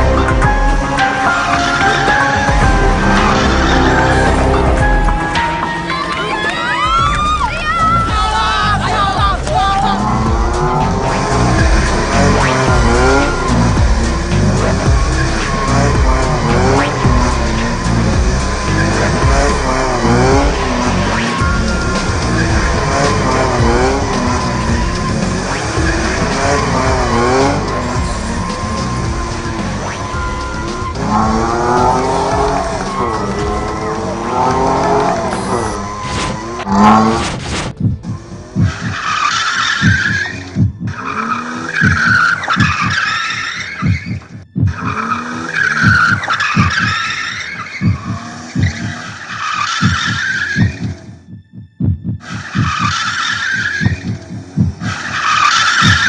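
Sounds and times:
tyres squealing: 0.0s - 37.2s, 38.3s - 51.1s
music with steady beat: 0.0s - 39.1s, 39.8s - 56.0s
car engines revving: 0.0s - 51.3s, 52.2s - 56.0s.

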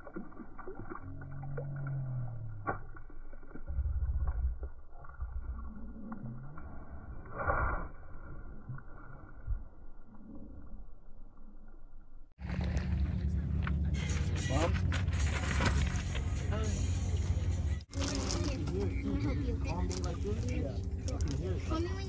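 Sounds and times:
muffled splash in water: 12.4s - 13.7s.

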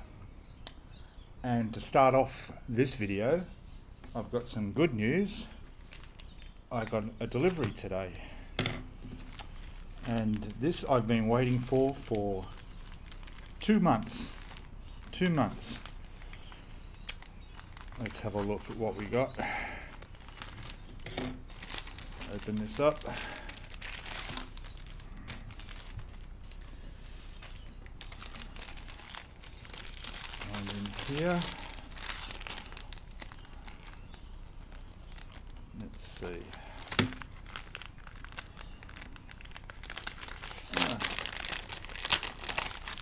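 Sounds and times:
package crinkling and rustling: 5.8s - 7.9s, 9.0s - 43.0s.

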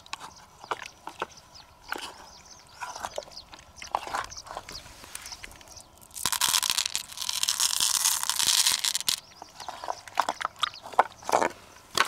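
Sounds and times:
beads clattering onto beads: 6.0s - 9.2s.

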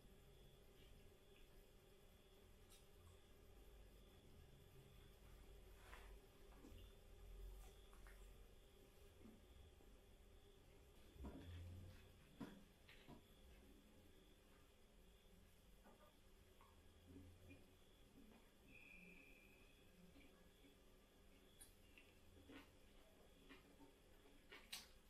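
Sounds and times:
soft clicks and rustles of eating: 0.6s - 4.0s, 4.9s - 10.0s, 10.7s - 13.8s, 15.8s - 19.2s, 19.8s - 25.0s.

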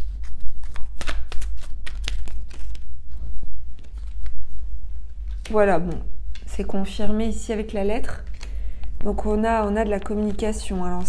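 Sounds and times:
cards being shuffled: 0.0s - 4.6s, 8.1s - 9.2s, 9.8s - 11.0s.

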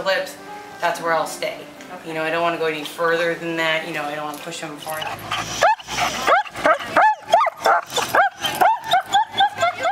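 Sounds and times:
dog yipping: 4.9s - 9.9s.

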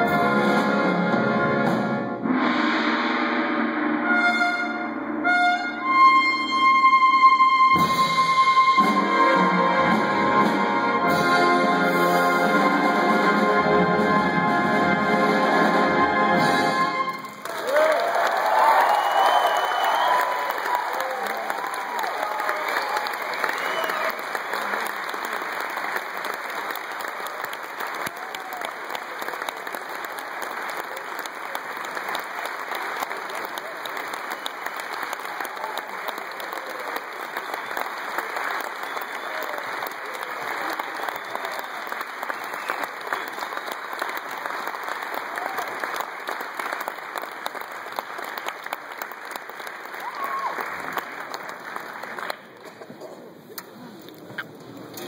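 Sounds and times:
audience clapping: 17.0s - 55.0s.

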